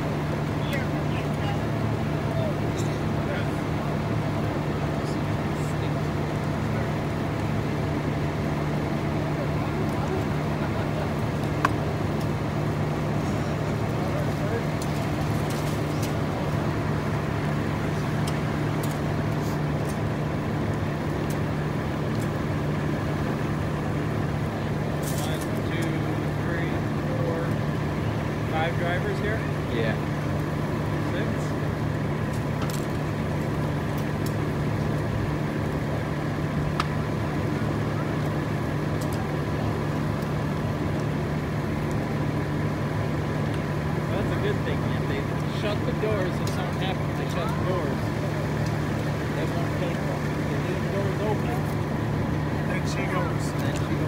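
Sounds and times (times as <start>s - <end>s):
vehicle engine idling: 0.0s - 54.0s.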